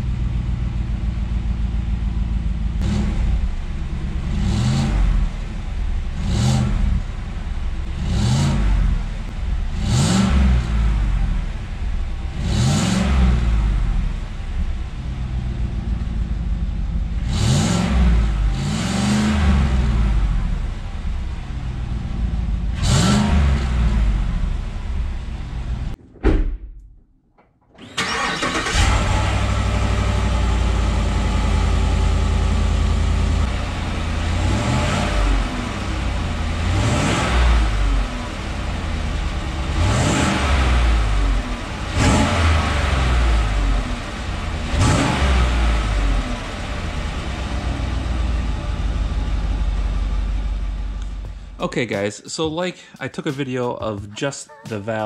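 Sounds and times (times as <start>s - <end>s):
truck engine idling: 0.0s - 18.7s, 19.7s - 22.8s, 27.6s - 36.6s, 46.0s - 55.0s
engine revving: 2.4s - 26.0s, 27.8s - 51.6s.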